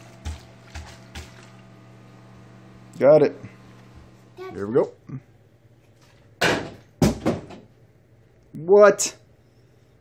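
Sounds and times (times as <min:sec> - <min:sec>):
plastic bottle landing knock: 0:06.4 - 0:07.7.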